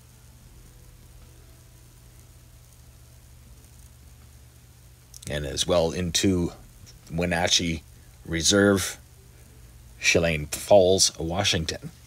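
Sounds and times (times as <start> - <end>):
faint steady hiss: 0.0 - 12.0
low hum: 0.0 - 12.0.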